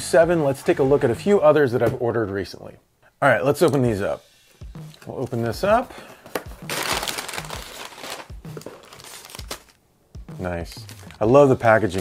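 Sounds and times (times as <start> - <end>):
packing paper crinkling: 6.2 - 9.8.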